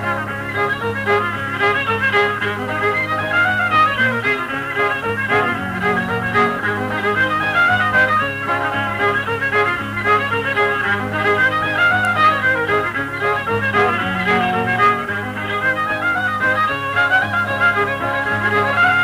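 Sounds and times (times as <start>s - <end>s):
fiddle melody: 0.0s - 19.0s
guitar accompaniment: 0.0s - 19.0s.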